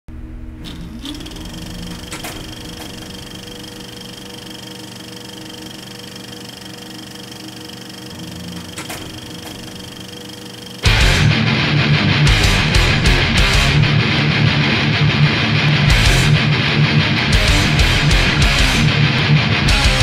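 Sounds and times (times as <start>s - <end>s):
short rising whine: 0.1s - 11.4s
mechanical whirring drone: 0.1s - 14.2s.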